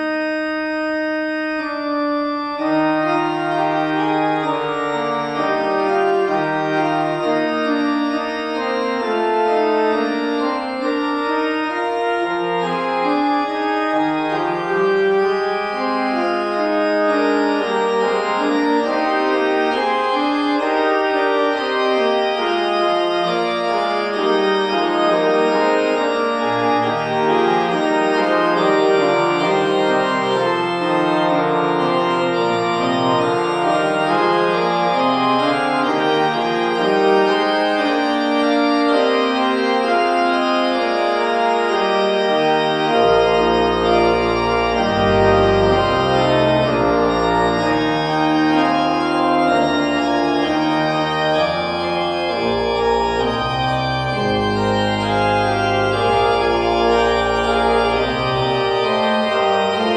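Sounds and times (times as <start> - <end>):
pipe organ playing chords: 0.0 - 59.9.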